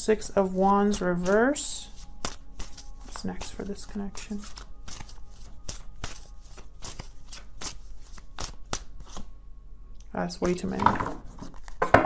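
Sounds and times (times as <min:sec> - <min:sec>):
cards being shuffled by hand: 0:00.8 - 0:09.3, 0:11.2 - 0:12.0.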